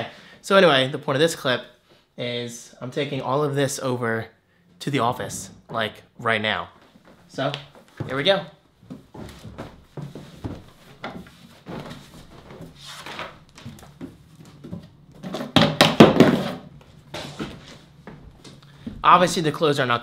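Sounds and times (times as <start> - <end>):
clothes rustling: 6.8 - 15.3.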